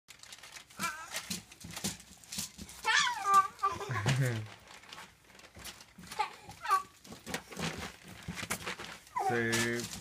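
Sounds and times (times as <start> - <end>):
toddler squealing and babbling: 2.8 - 3.9, 6.2 - 7.0.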